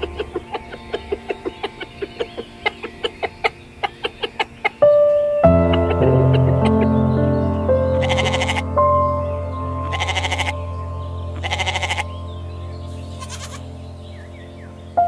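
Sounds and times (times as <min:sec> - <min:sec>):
soft background music: 0:00.0 - 0:15.0
goat bleating: 0:13.2 - 0:13.6.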